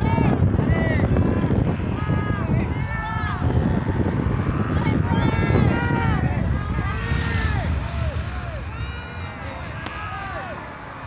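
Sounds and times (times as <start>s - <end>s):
wind buffeting microphone: 0.0s - 11.0s
people shouting: 4.5s - 10.9s.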